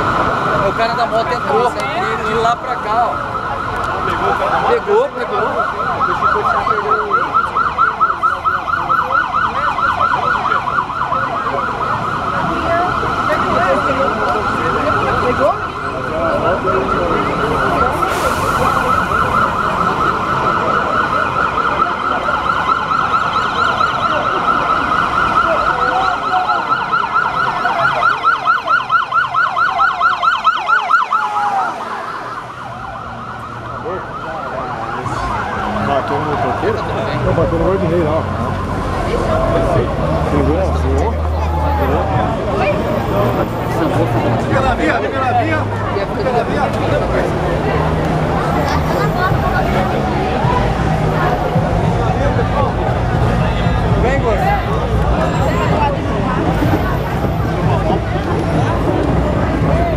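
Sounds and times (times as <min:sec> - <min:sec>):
police siren warbling: 0:00.0 - 0:59.9.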